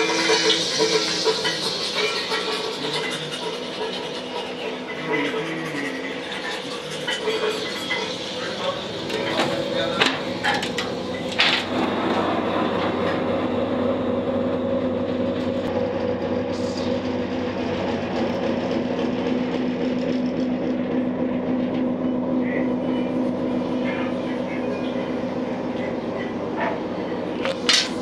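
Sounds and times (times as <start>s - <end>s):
engine-room machinery drone: 0.0s - 28.0s.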